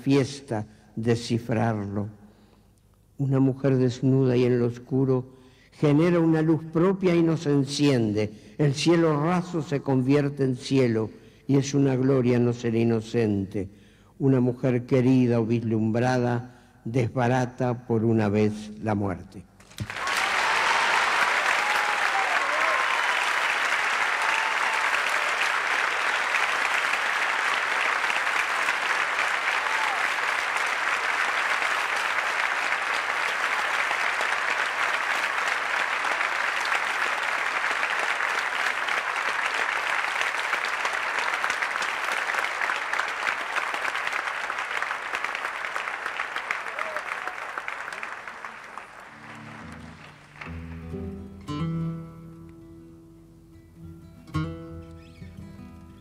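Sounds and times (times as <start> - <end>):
audience applauding: 19.6 - 51.5
acoustic guitar playing: 49.1 - 56.0.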